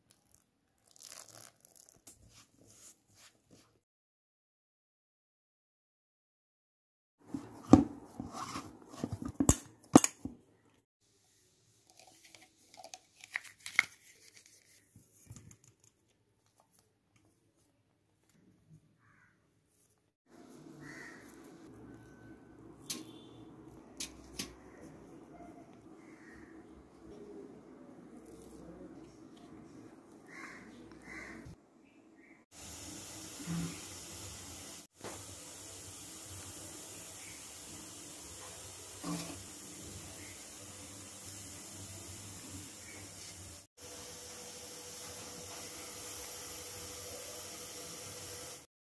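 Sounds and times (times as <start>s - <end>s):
steam hissing from pot: 32.6s - 48.7s.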